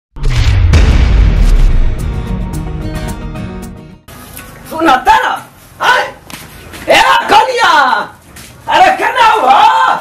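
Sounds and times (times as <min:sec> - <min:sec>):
deep rumbling cinematic boom: 0:00.2 - 0:02.9
sharp hit: 0:00.2 - 0:03.1.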